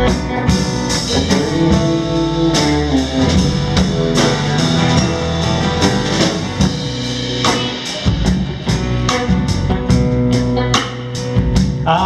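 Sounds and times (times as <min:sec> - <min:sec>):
acoustic guitar: 0:00.0 - 0:12.0
drum kit: 0:00.0 - 0:12.0
electric guitar: 0:00.0 - 0:12.0
upright double bass: 0:00.0 - 0:12.0.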